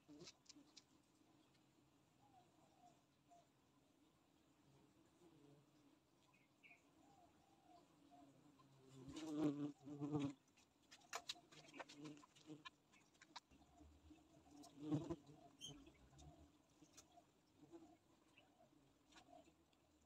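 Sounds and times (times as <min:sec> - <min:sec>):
small clicks and crackles: 0:00.0 - 0:01.7, 0:10.1 - 0:13.6.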